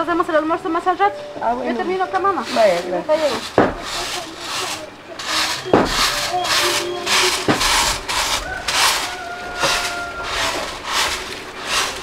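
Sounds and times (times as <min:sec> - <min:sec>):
broom sweeping dirt: 0:02.0 - 0:12.0
sharp knock: 0:03.4 - 0:04.0, 0:05.3 - 0:08.4.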